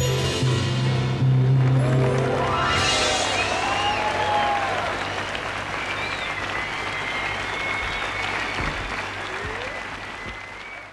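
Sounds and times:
audience applauding: 1.6 - 10.9
thin whistles: 5.0 - 8.7.

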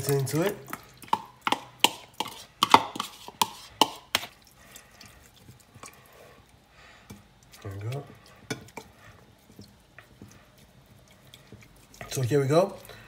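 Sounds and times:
spoon scraping mesh strainer: 1.8 - 4.4.

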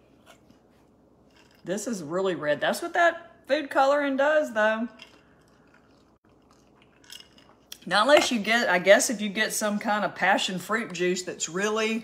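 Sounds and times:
woman speaking: 1.6 - 5.0, 7.8 - 12.0.

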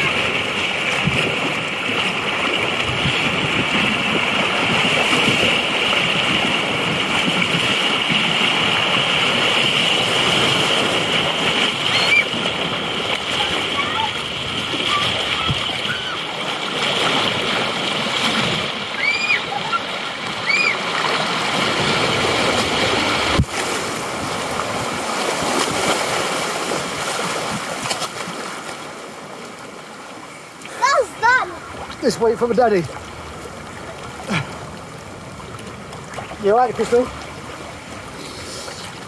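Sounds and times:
turbulent water rushing: 0.0 - 39.0
water splashing: 0.0 - 39.0.

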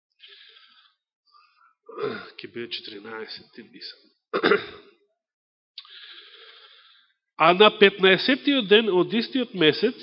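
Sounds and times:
man clearing his throat: 4.4 - 5.0.

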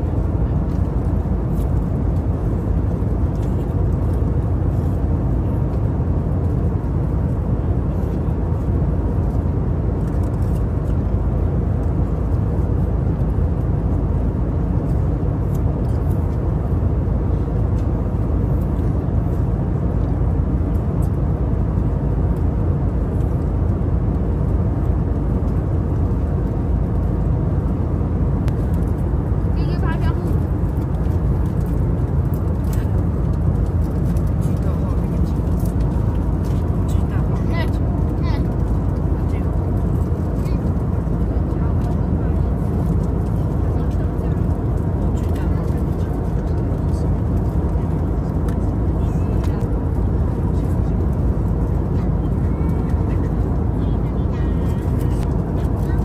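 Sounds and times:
airliner cabin rumble: 0.0 - 56.0.

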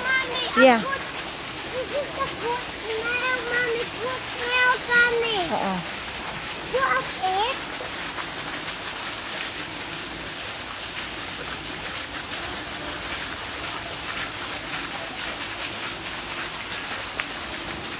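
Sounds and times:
running water rushing: 0.0 - 17.9.

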